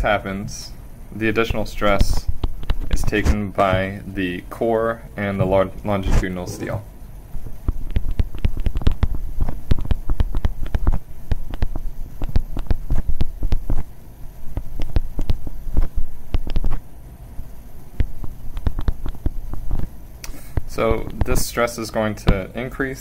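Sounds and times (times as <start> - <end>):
stylus tapping on a tablet: 7.7 - 13.8, 14.5 - 15.4.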